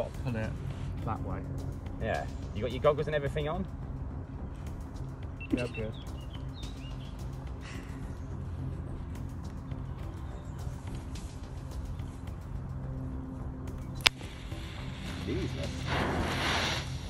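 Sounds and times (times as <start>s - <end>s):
sharp snap: 13.7s - 14.3s.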